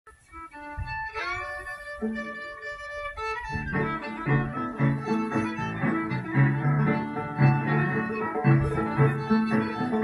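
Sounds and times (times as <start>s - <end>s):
fiddle playing a tune: 0.1s - 10.0s
guitar accompaniment: 0.5s - 10.0s.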